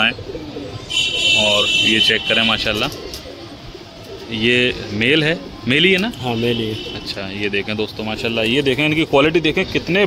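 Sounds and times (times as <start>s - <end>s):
pigeons cooing: 0.0s - 9.5s.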